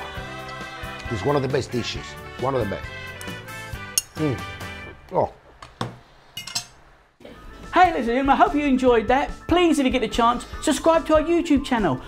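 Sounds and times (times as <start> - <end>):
metal fork clinking on plate: 6.4 - 6.8.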